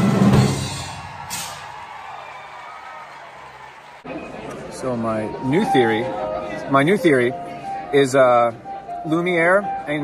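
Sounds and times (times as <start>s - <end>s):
band playing: 0.0s - 1.6s, 4.8s - 10.0s.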